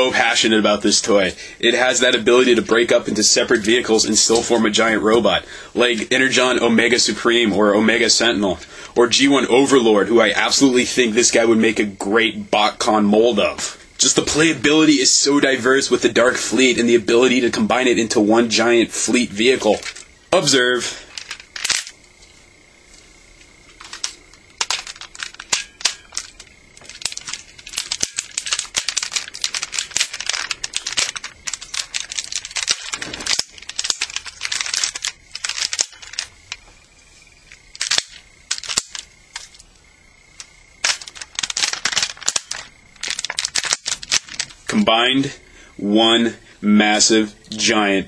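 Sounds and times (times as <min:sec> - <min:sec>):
plastic toy parts clicking: 0:21.1 - 0:22.0, 0:23.8 - 0:36.6, 0:37.7 - 0:39.5, 0:40.4 - 0:44.6.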